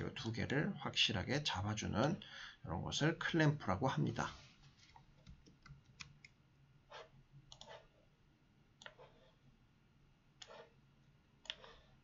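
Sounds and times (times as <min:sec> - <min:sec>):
computer mouse clicks: 0:07.5 - 0:07.8, 0:08.8 - 0:09.1, 0:11.4 - 0:11.9.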